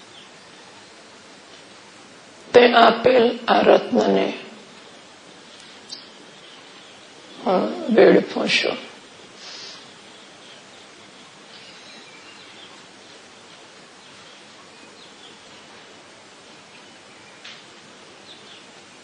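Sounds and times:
background hiss: 0.0 - 19.0
faint bird chirps: 5.6 - 7.5, 9.5 - 15.8.

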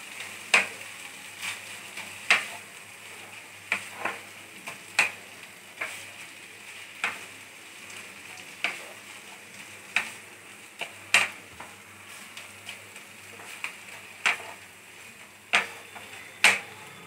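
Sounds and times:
faint frying sizzle: 0.0 - 17.0
spatula scraping a pan: 0.2 - 7.3, 8.2 - 17.0.

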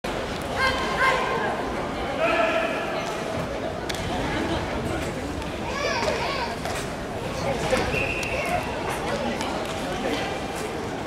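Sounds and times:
large hall noise: 0.0 - 11.0.

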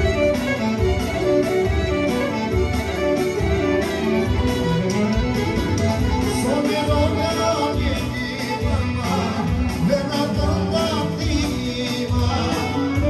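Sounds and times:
clarinet melody: 0.0 - 9.0
folk band accompaniment: 0.0 - 13.0.

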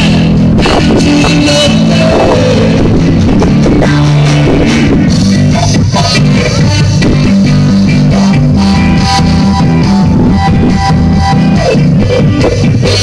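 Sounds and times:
live ska band playing: 0.0 - 13.0.

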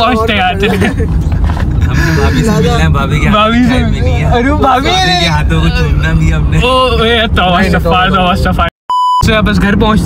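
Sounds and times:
censor bleep: 8.9 - 9.3.

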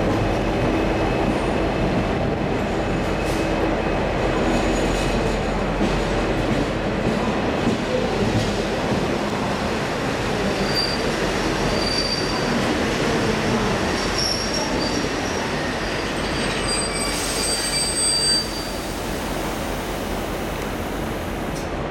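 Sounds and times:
train rumbling: 0.0 - 21.9
train wheel squeals: 10.5 - 12.7, 13.9 - 19.3.

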